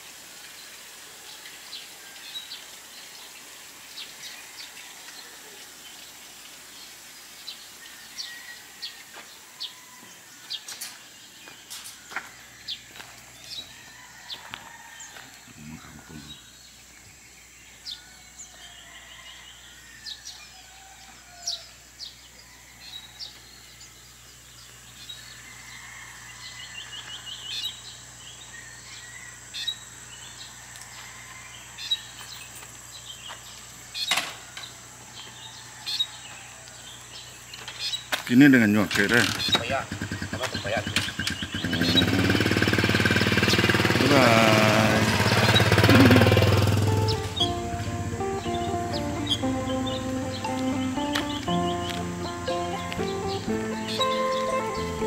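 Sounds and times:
small birds chirping: 0:10.4 - 0:20.4, 0:31.8 - 0:55.0.

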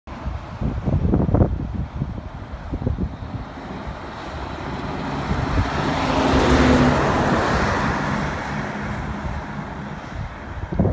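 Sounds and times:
lorry driving past: 0:03.0 - 0:10.5.

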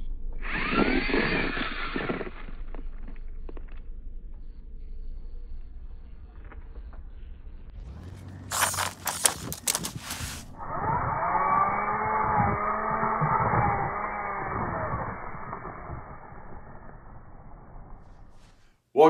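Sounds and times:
rc car motor whine: 0:00.0 - 0:18.7
sharp clattering clicks: 0:08.5 - 0:10.0.

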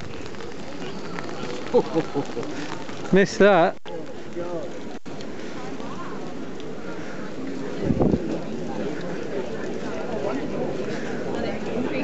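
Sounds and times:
murmur of large crowd: 0:00.0 - 0:12.0.

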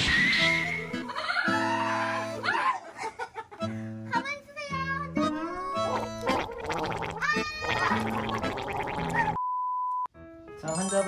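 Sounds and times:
gurgling rattling vocal noise: 0:05.8 - 0:09.4.

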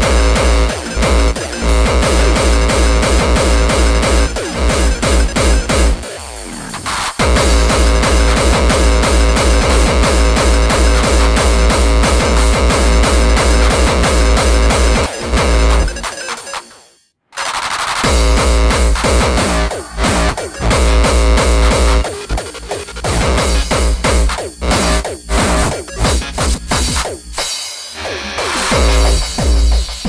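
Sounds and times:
heavy kick drum: 0:00.0 - 0:06.0, 0:07.2 - 0:16.0, 0:18.0 - 0:27.1, 0:28.7 - 0:30.0
hardcore electronic dance music: 0:00.0 - 0:30.0.

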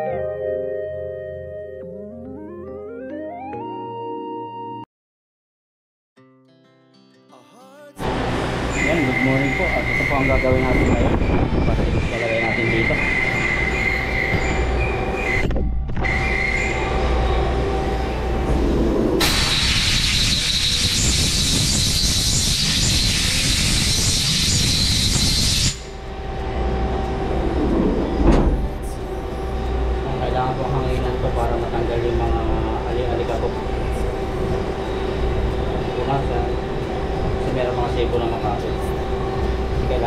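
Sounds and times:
factory machinery humming: 0:08.0 - 0:40.0
compressed air blow gun hissing: 0:19.2 - 0:25.9.

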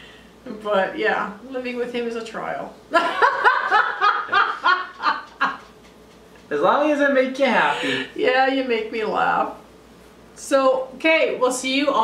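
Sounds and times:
woman and man laughing: 0:03.0 - 0:05.8.

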